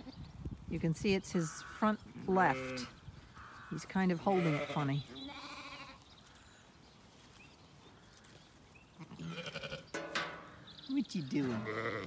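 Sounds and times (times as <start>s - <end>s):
faint outdoor background: 0.0s - 12.0s
lamb bleating: 2.4s - 6.0s, 9.0s - 9.9s, 11.5s - 12.0s.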